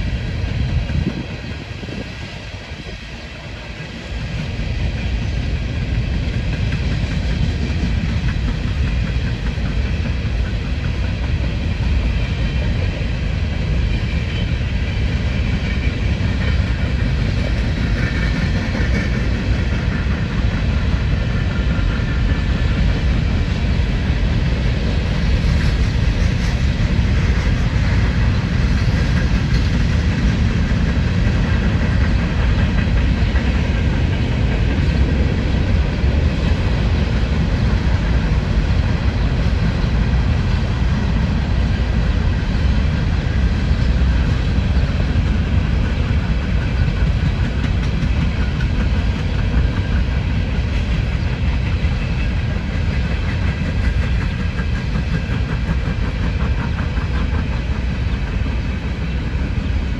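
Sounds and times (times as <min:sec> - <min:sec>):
train wheels rolling on rails: 0:00.0 - 0:59.9.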